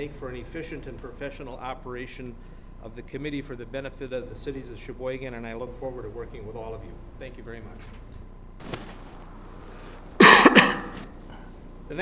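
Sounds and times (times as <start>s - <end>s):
man coughing: 10.2s - 11.6s.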